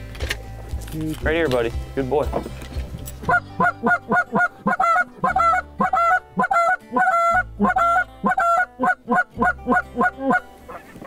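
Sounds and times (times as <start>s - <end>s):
goose call honks and clucks: 3.2s - 11.0s.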